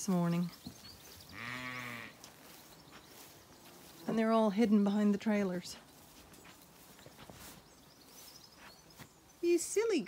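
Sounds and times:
sheep bleating: 1.3 - 2.2.

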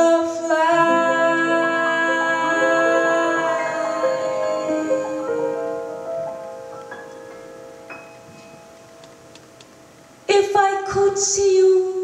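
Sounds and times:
piano notes: 0.0 - 11.0.

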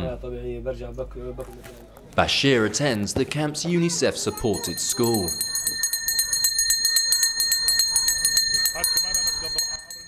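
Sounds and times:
handbell ringing: 4.3 - 10.0.

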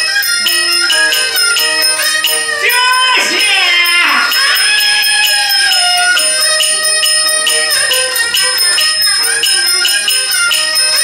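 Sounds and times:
traditional instrumental accompaniment: 0.0 - 11.0.

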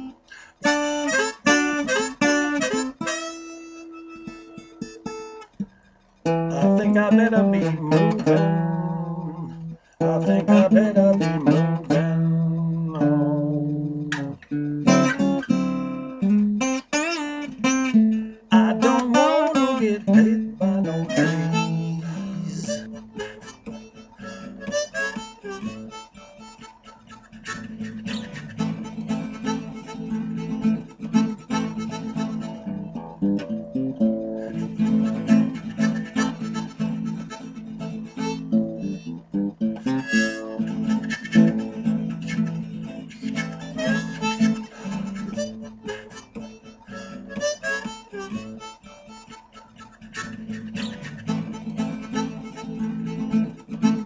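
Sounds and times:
acoustic guitar strumming: 0.0 - 54.0
blues harmonica: 0.0 - 54.0.

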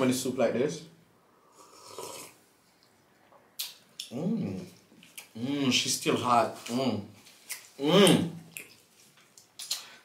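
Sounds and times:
slurp of hot soup: 1.5 - 2.5.

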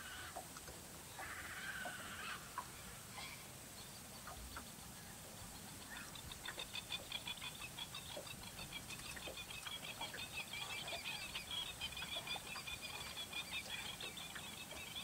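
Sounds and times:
lower bird calls and clicks: 0.2 - 15.0
birds chirping: 1.1 - 15.0.

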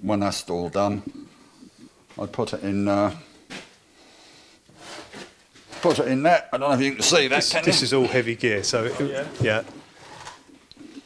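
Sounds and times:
man speaking: 2.1 - 3.3, 5.8 - 9.8.

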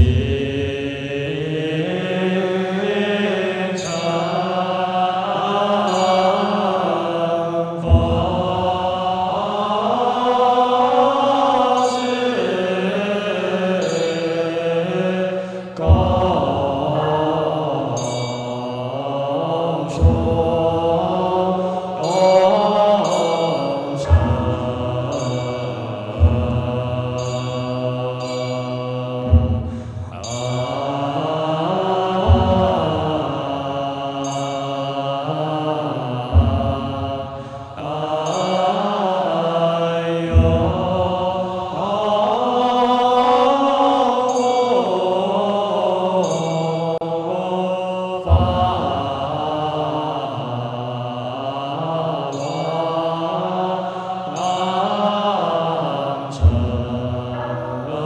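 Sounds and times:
monks chanting in unison: 0.0 - 58.0
deep percussion strikes: 7.8 - 10.2, 15.8 - 28.4, 29.0 - 34.4, 35.9 - 39.6, 40.2 - 42.6, 48.2 - 49.7, 56.4 - 58.0.

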